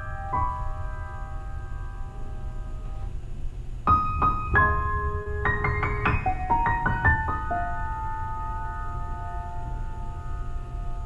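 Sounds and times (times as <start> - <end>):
low steady hum: 0.0 - 11.0
piano notes ringing: 0.0 - 11.0.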